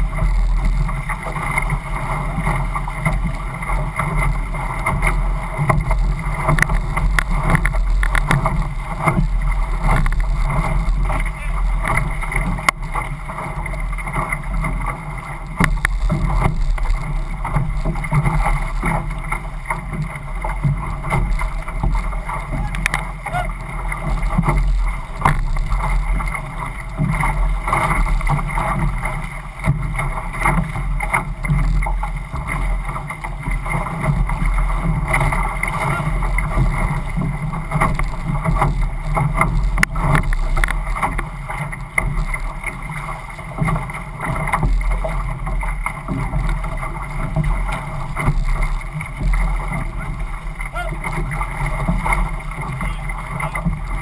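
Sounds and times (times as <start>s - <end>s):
paddle stroke splashes and knocks: 0.0s - 54.0s
water rushing along canoe hull: 0.0s - 54.0s
wind rumble on microphone: 0.0s - 54.0s.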